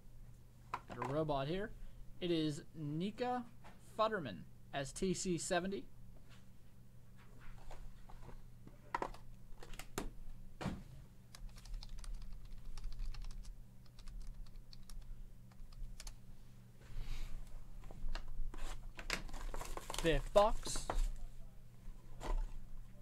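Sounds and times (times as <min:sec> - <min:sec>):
low electrical hum: 0:00.0 - 0:23.0
computer keyboard typing: 0:11.3 - 0:16.2.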